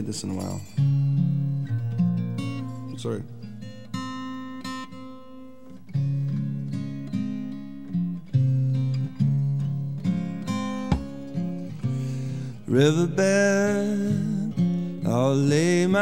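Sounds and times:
acoustic guitar chords: 0.0 - 16.0.

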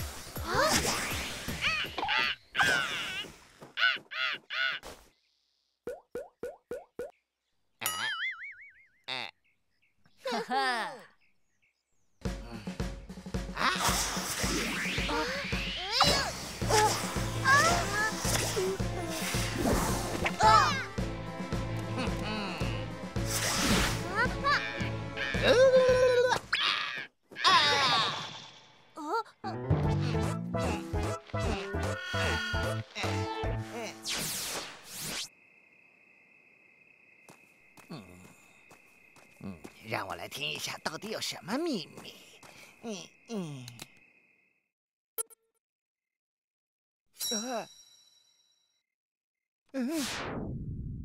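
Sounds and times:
cartoon character vocal cries: 24.1 - 28.2.

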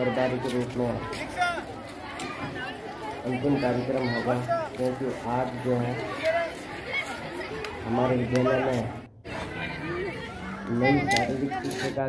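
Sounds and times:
students chattering: 0.0 - 12.0.

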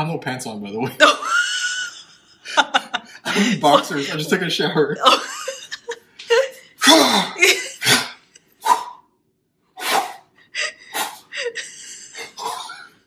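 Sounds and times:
person laughing: 1.0 - 8.0, 10.6 - 12.9.

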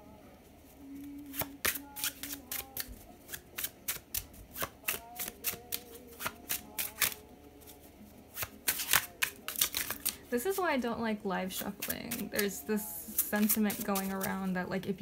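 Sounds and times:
cards being shuffled: 1.0 - 10.7, 11.6 - 14.5.

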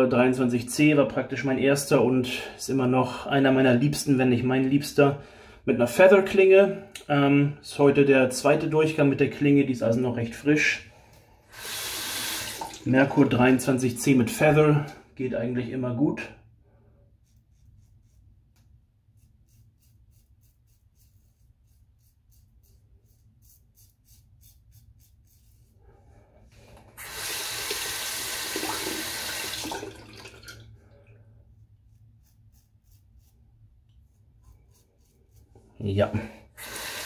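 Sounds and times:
razor scraping stubble: 17.2 - 25.8, 31.6 - 37.0.

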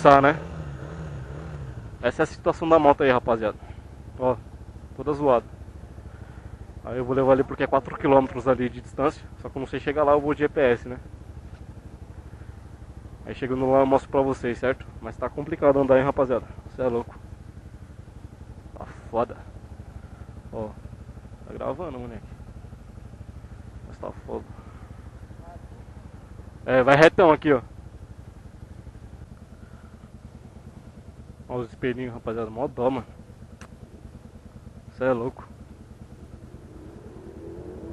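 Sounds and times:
motorcycle engine idling: 0.0 - 37.9.

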